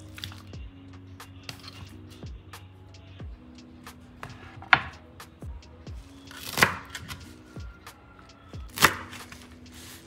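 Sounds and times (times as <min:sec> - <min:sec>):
knife chopping on wooden board: 0:04.2 - 0:05.0, 0:06.4 - 0:07.2, 0:08.7 - 0:09.2.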